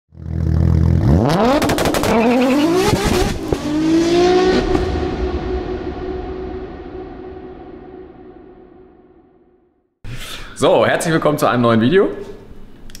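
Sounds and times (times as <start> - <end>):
car engine idling and revving: 0.1 - 6.4.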